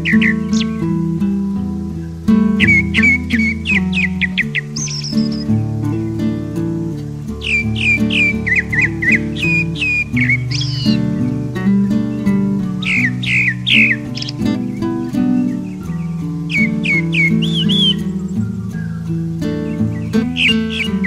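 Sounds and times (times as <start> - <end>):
acoustic guitar music: 0.0 - 21.0
thrush singing whistles: 0.0 - 21.0.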